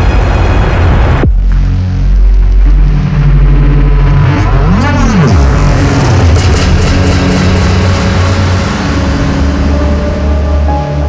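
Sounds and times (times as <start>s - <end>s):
dark electronic music: 0.0s - 11.0s
deep synth bass: 0.0s - 11.0s.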